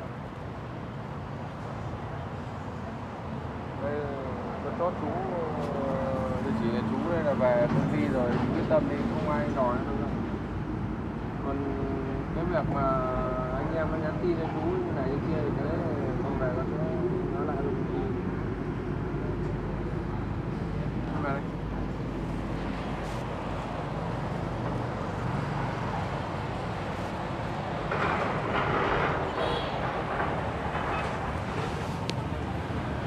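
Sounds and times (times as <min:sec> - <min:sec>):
traffic hum: 0:00.0 - 0:33.0.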